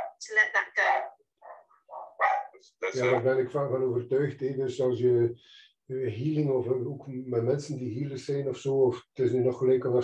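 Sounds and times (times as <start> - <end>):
dog barking: 0.0 - 0.2, 0.8 - 2.6.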